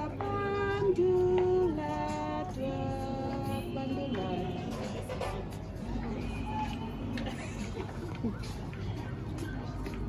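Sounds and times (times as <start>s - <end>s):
young female voice singing: 0.0s - 4.9s.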